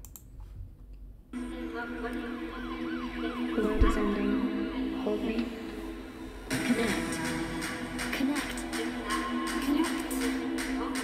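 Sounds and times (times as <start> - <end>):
siren wailing up and down: 1.4 - 5.2.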